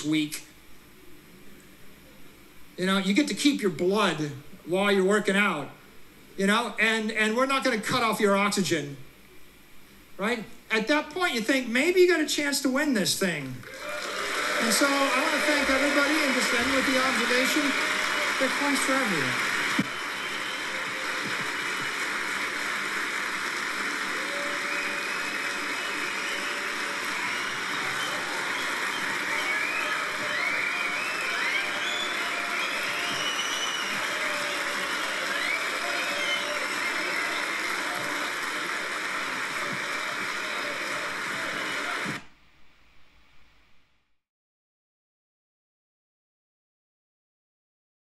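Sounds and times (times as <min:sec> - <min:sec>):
crowd applauding and cheering: 0:13.6 - 0:42.2
whistles: 0:19.9 - 0:22.0, 0:24.2 - 0:38.4.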